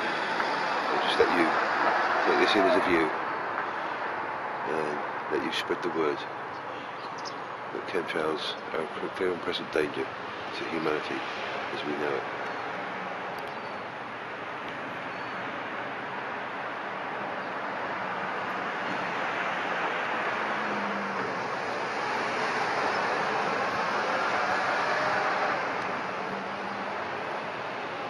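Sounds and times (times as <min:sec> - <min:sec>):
vehicle passing: 0:00.0 - 0:06.3, 0:07.7 - 0:28.0.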